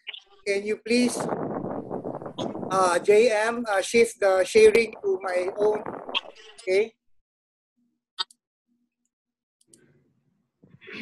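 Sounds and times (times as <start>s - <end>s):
person speaking: 2.7s - 5.9s.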